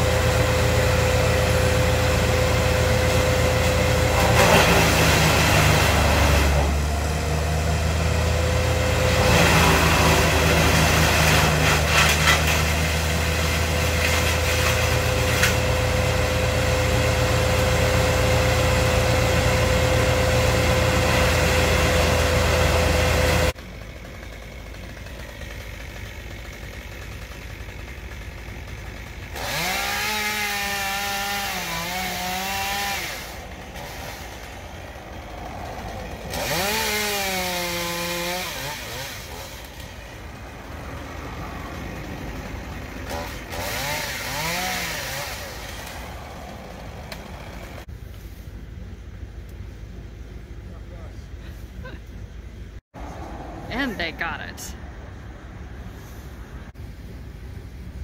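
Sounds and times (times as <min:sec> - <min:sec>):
distant chainsaw cutting wood: 0:00.0 - 0:47.9.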